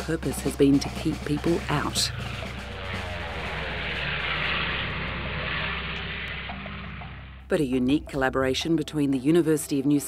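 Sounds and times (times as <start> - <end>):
propeller aircraft flying past: 0.1 - 7.9.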